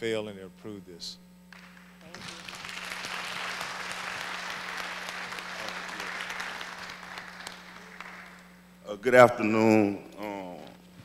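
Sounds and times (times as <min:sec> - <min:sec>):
audience applauding: 0:01.5 - 0:08.6.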